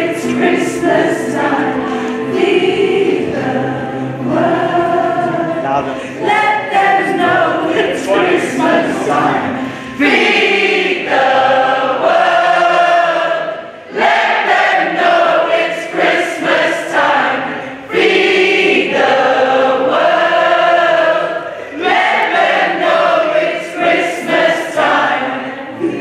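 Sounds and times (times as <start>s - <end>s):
mixed choir singing: 0.0s - 26.0s
singers breathing: 1.8s - 2.3s, 5.9s - 6.2s, 9.6s - 10.0s.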